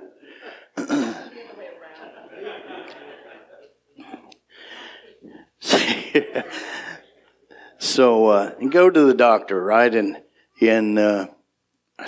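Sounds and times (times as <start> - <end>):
man breathing: 0.0 - 0.8, 4.0 - 5.6, 6.4 - 7.8
man laughing: 5.6 - 7.1.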